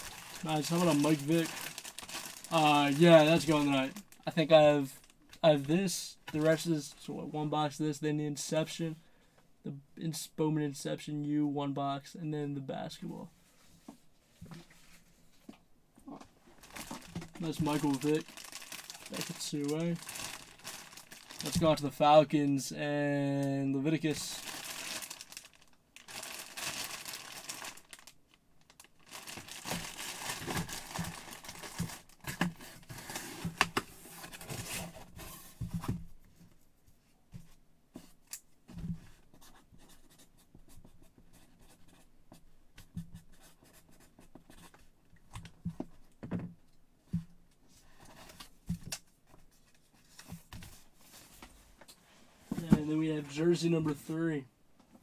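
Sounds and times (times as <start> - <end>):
plastic bag crinkling: 0.0 - 4.3, 16.6 - 21.8, 24.2 - 32.2.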